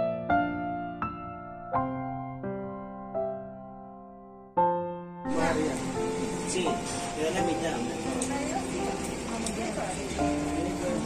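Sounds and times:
background music with held notes: 0:04.0 - 0:11.0
people's voices: 0:05.3 - 0:11.0.

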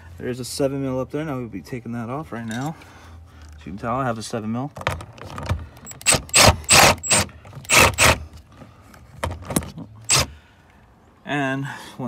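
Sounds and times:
cordless driver bursts: 0:05.8 - 0:08.3, 0:10.0 - 0:10.4.

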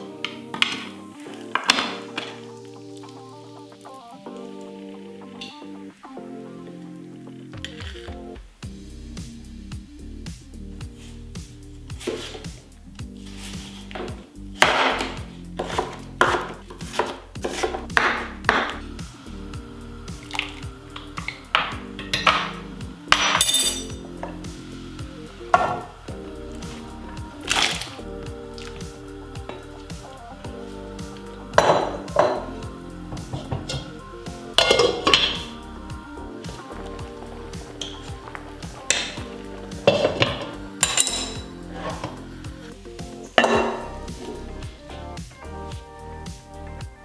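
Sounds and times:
background music: 0:00.0 - 0:47.0
knife slicing potatoes on board: 0:14.0 - 0:18.8.

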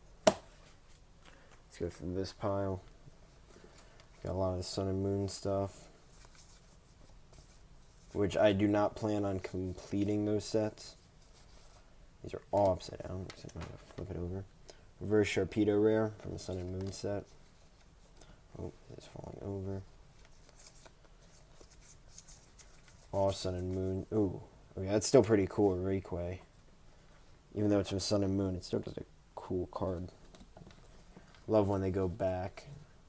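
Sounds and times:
cards sliding against each other: 0:20.1 - 0:23.1.

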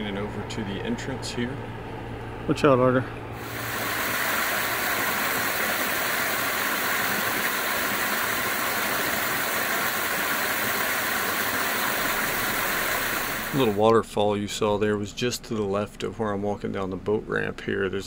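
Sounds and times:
waterfall rushing into pool: 0:03.4 - 0:13.8.

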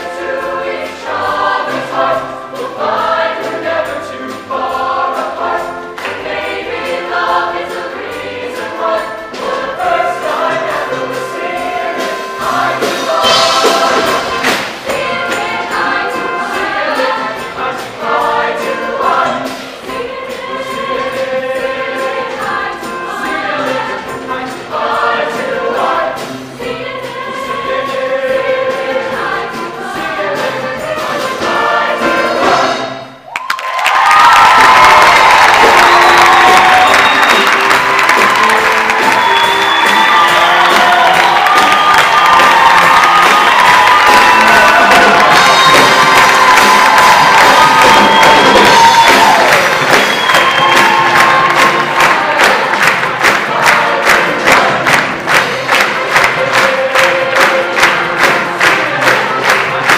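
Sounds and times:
choir singing with live band: 0:00.0 - 0:33.2, 0:34.0 - 0:59.9
audience cheering loudly: 0:33.3 - 0:52.8.

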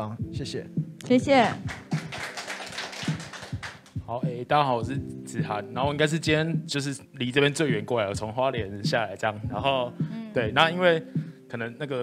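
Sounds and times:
small audience clapping: 0:01.4 - 0:04.0.

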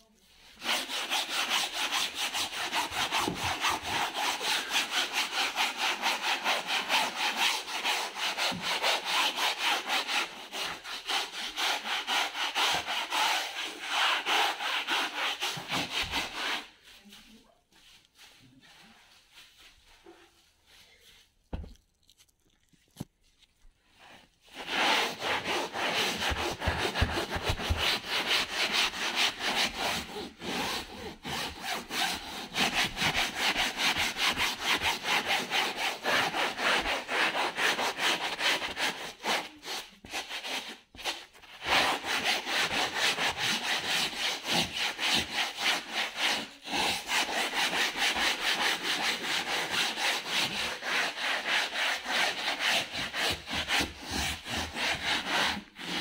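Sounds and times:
brush scrubbing fabric: 0:00.0 - 0:21.7, 0:23.1 - 0:56.0.

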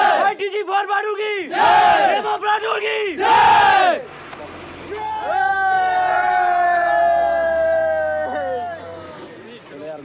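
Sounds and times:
group shouting war cry: 0:00.0 - 0:00.4, 0:01.5 - 0:04.0.

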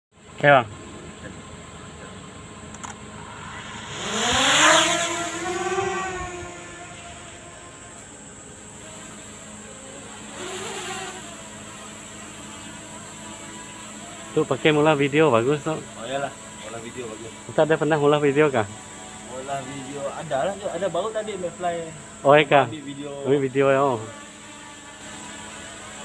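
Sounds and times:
drone propellers whining: 0:00.7 - 0:26.0.

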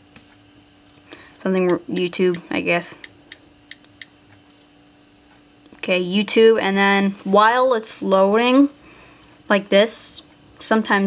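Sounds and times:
faint steady hum: 0:00.0 - 0:11.0
on-screen keyboard ticks: 0:01.6 - 0:04.7.

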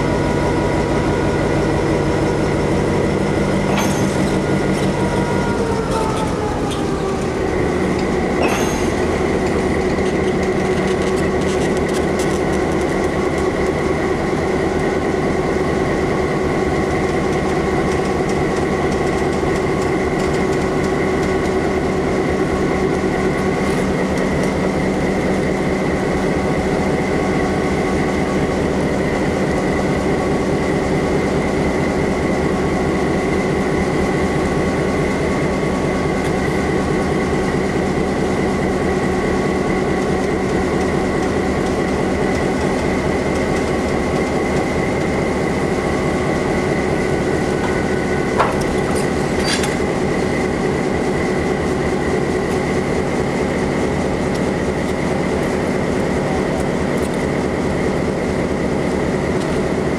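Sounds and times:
high whine: 0:00.0 - 0:31.3, 0:32.0 - 0:59.6
diesel locomotive engine running: 0:00.0 - 0:59.9.

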